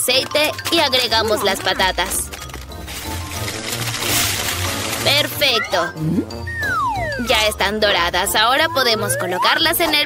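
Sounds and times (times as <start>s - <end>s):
background music with bass line: 1.7s - 10.0s.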